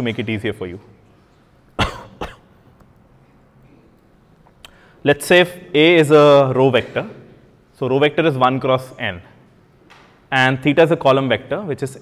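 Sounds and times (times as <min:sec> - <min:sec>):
person coughing: 0:01.8 - 0:02.5, 0:06.7 - 0:07.5.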